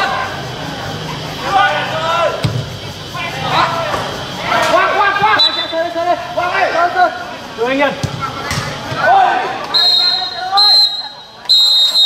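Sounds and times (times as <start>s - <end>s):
people shouting: 0.0s - 7.2s, 8.1s - 12.0s
referee's whistle blasts: 5.2s - 5.9s, 9.7s - 12.0s.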